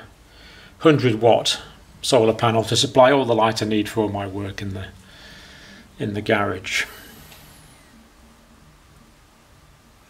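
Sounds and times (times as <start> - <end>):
faint steady hiss: 0.0 - 10.0
low hum: 0.0 - 10.0.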